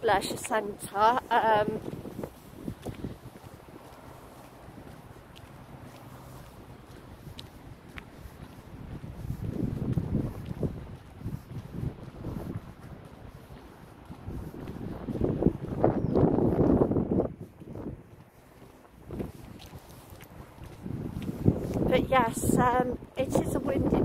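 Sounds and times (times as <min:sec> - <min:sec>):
wind buffeting microphone: 0:00.0 - 0:24.0.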